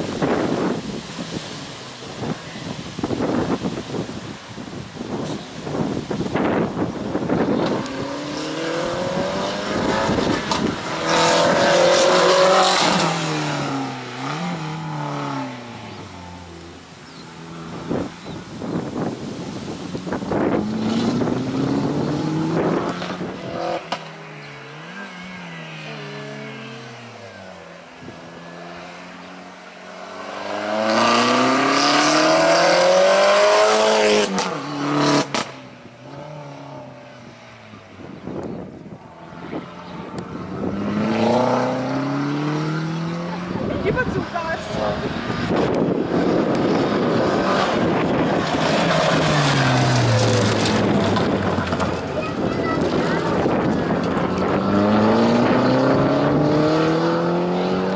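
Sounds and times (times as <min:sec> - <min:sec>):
car engine revving: 0:06.4 - 0:16.8, 0:18.7 - 0:37.0, 0:39.2 - 0:57.9.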